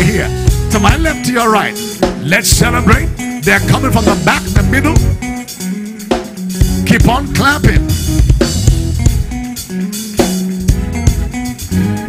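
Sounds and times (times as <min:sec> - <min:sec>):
praise band playing: 0:00.0 - 0:12.0.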